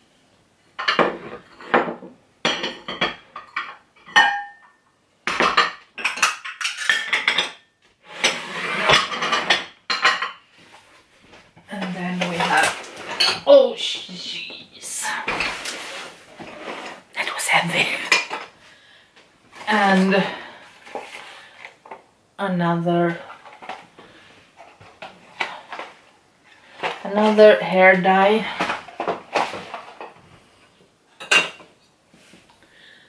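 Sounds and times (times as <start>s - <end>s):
glass dishes clinking: 0.8s - 7.7s, 31.2s - 31.7s.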